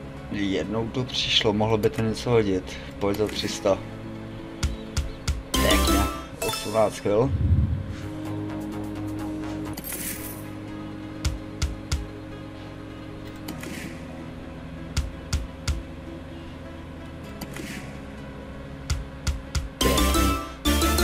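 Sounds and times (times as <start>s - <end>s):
slot spin swish: 5.7s - 7.5s.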